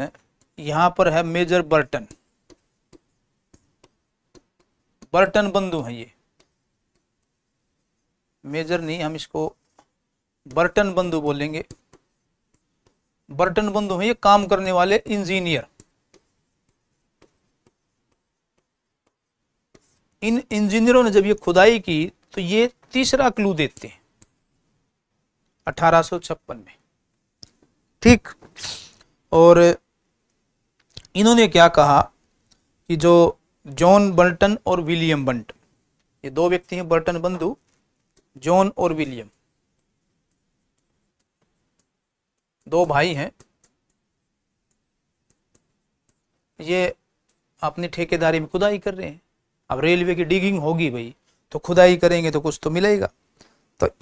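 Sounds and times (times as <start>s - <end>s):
marker writing on whiteboard: 0.0s - 24.7s, 36.4s - 46.5s.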